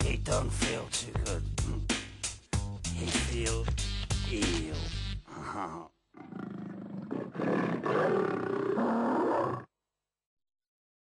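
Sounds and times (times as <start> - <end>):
deep rough vocal roar: 5.3 - 9.7.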